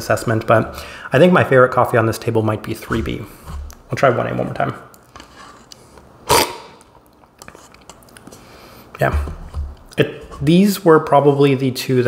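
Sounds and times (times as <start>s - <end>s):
loud coffee slurp: 6.3s - 6.8s.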